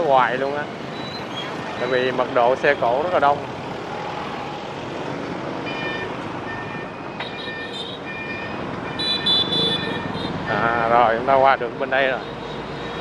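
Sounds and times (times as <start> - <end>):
street traffic passing: 0.0 - 13.0.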